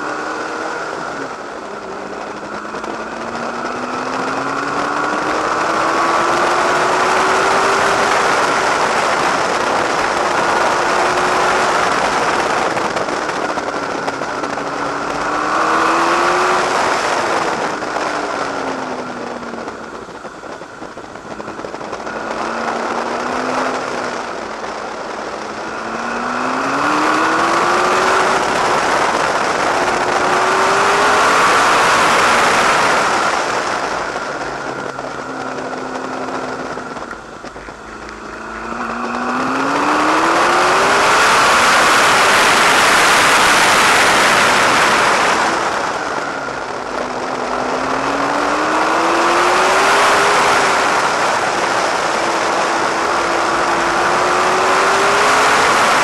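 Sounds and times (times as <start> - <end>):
sports car engine accelerating: 0.0 - 56.0
wind and tyre noise: 0.0 - 56.0.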